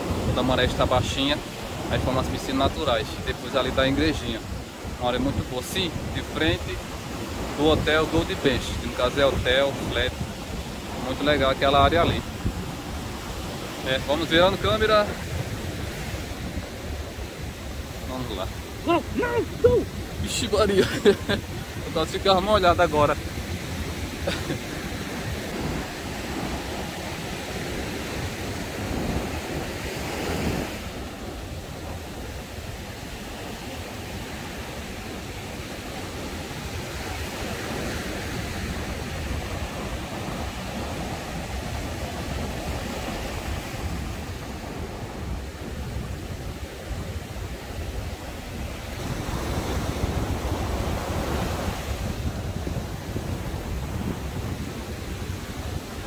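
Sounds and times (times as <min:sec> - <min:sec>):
surf breaking on beach: 0:00.0 - 0:56.0
wind rumbling on microphone: 0:00.0 - 0:56.0.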